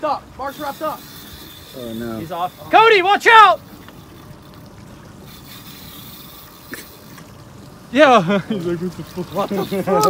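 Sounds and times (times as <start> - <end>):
water lapping against boat hull: 0.3 - 10.0.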